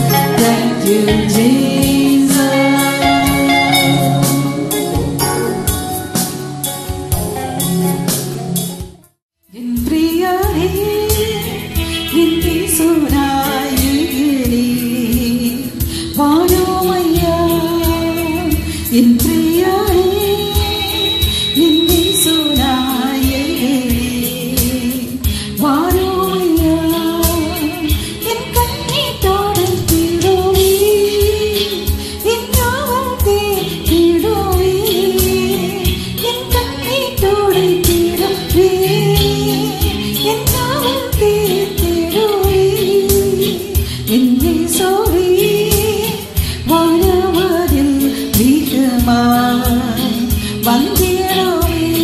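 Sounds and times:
woman singing worship song: 0.0 - 5.2, 9.5 - 52.0
rhythmic beat: 0.0 - 9.1.

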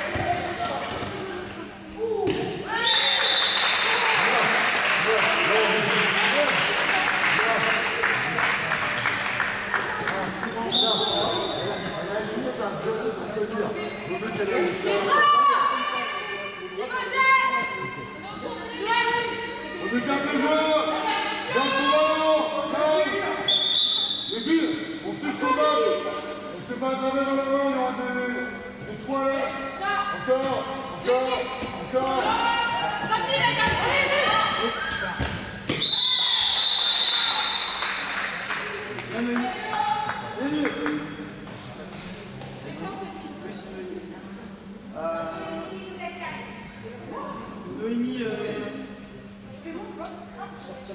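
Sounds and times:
ball bouncing on court: 0.0 - 1.6, 33.0 - 34.0, 34.9 - 35.8
voices echoing in a hall: 0.0 - 50.9
spectators clapping and cheering: 3.1 - 10.7, 36.4 - 41.0
referee whistle blast: 23.5 - 24.4.

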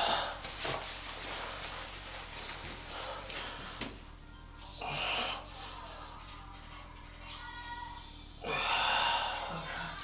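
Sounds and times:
man breathing forcefully: 0.0 - 0.5.

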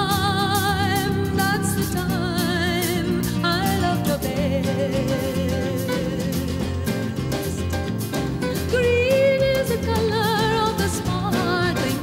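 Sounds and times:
acoustic accompaniment: 0.0 - 12.0
woman singing with vibrato: 0.0 - 12.0.

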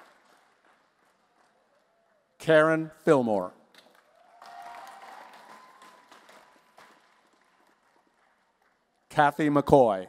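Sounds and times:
light scattered applause: 0.0 - 2.4, 3.8 - 9.2.

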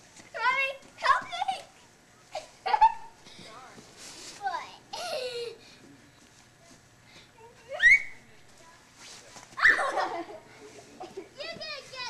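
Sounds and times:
child squealing and shouting: 7.7 - 8.2, 9.6 - 10.0.

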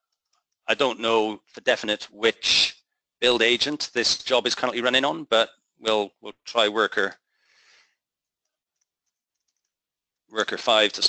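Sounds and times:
person speaking: 0.7 - 7.1, 10.4 - 11.0
faint breath: 7.3 - 8.0.

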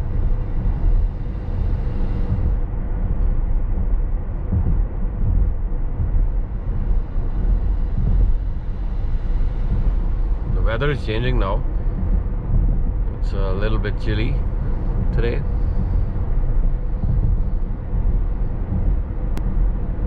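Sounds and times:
tyre and road rumble in car: 0.0 - 20.0.

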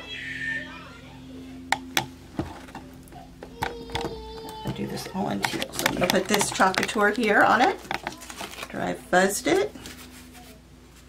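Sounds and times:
faint background music: 0.0 - 10.9
stirring stick tapping a jar: 3.6 - 8.4.

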